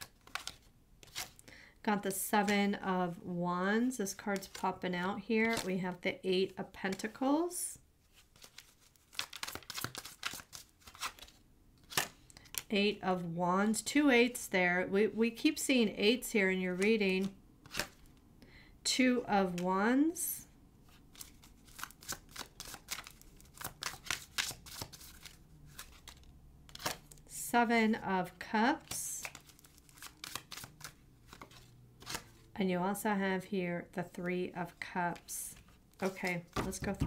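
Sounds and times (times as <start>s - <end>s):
cards being shuffled: 0.0s - 1.4s, 4.2s - 4.8s, 5.4s - 5.8s, 8.0s - 12.7s, 16.8s - 18.2s, 20.8s - 27.3s, 28.8s - 32.4s, 35.1s - 37.0s.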